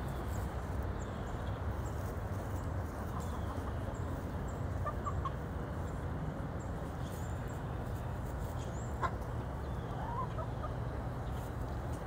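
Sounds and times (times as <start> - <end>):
low background noise: 0.0 - 12.0
hens clucking: 1.9 - 6.0, 6.8 - 12.0.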